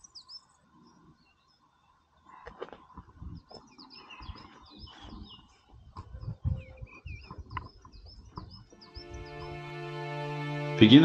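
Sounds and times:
songbirds chirping: 0:00.0 - 0:11.0.

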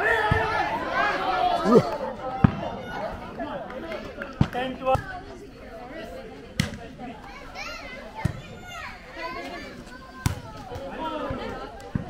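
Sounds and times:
people calling out and shouting: 0:00.0 - 0:04.2
volleyball slaps: 0:06.6 - 0:06.8, 0:10.2 - 0:10.9.

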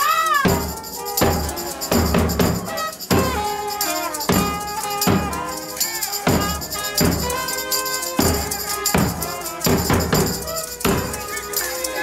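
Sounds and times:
jingling tambourine: 0:00.0 - 0:12.0
live band playing: 0:00.0 - 0:12.0.

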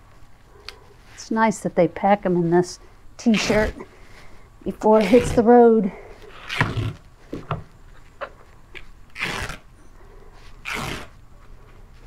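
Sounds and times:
fabric wrap rustling: 0:07.9 - 0:09.7, 0:10.4 - 0:12.0.

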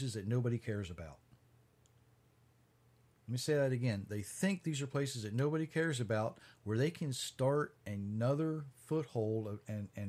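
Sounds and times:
low steady hum: 0:00.0 - 0:10.0
faint click: 0:01.3 - 0:02.1.

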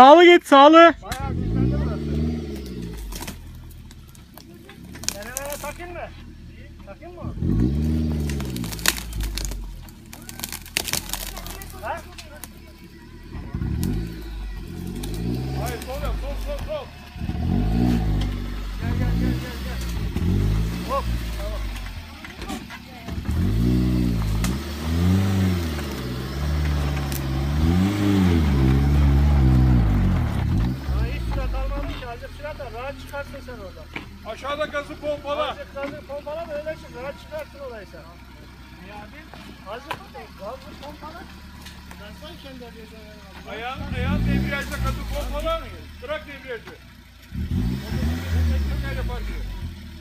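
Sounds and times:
engine idling: 0:00.0 - 0:50.0
engine revving: 0:00.9 - 0:50.0.

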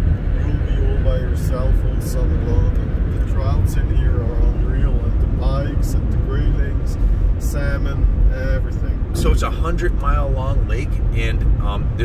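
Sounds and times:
road and engine rumble in car: 0:00.0 - 0:12.0
people talking: 0:00.4 - 0:12.0.

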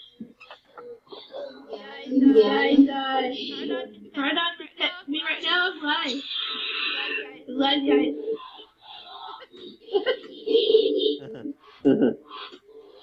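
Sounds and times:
garbled voice fragments: 0:11.0 - 0:11.6.

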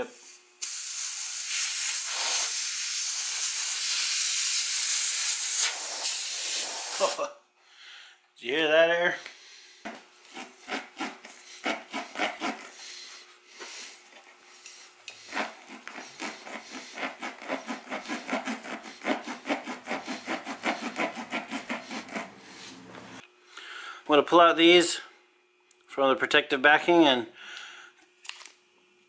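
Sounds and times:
reamer tool rasping in tire: 0:10.2 - 0:14.0, 0:14.6 - 0:23.2.

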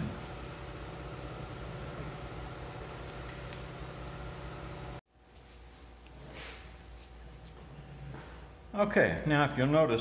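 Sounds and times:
electrical hum of power supply: 0:00.0 - 0:10.0.

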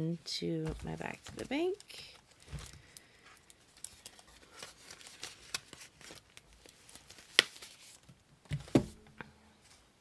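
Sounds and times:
paper banknotes rustling: 0:03.7 - 0:08.0.

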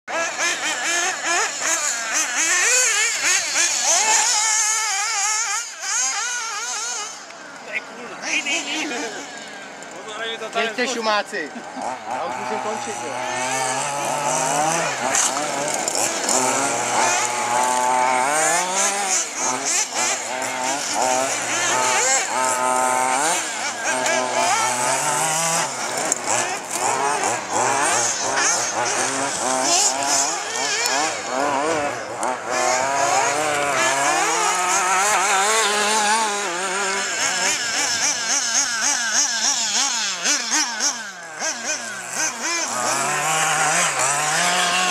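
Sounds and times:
small two-stroke engines racing: 0:00.0 - 0:44.9.

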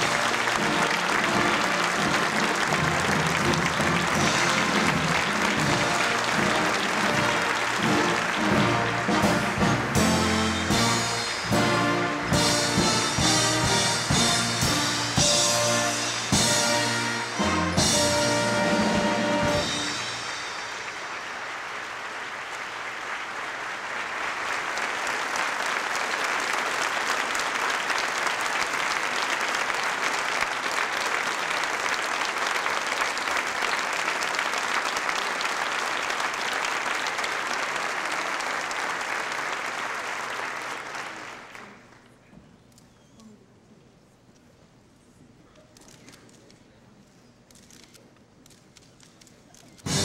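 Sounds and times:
music: 0:00.0 - 0:21.0
audience applause: 0:00.0 - 0:42.3.

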